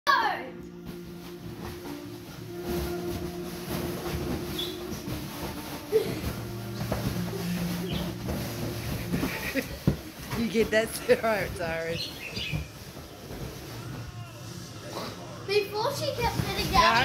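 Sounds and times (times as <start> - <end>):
background music: 0.1 - 17.0
dog pawing at bean bag: 0.8 - 14.2.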